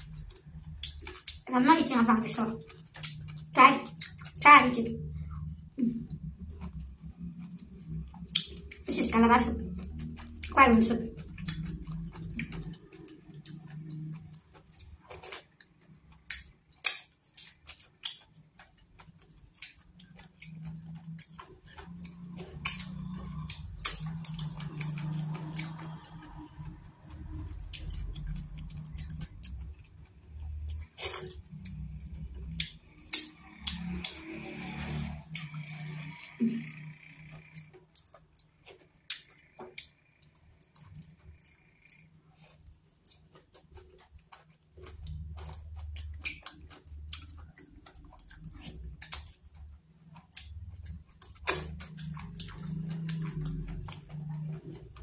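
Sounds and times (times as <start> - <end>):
chewing and smacking food: 0.0 - 55.0
wet mouth clicks: 7.2 - 30.0, 50.3 - 55.0.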